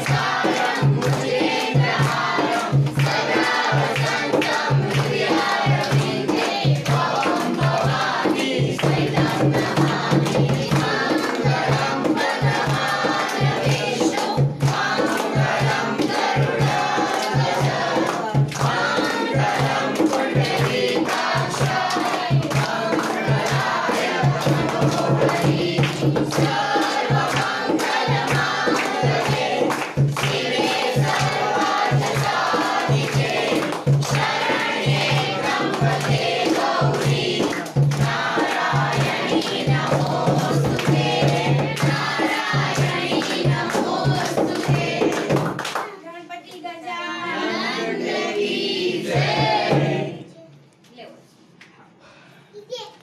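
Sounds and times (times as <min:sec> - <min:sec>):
steady repeating beat: 0:00.0 - 0:45.6
group singing devotional song: 0:00.0 - 0:45.8, 0:46.7 - 0:50.5
hand-clapping: 0:00.0 - 0:46.6.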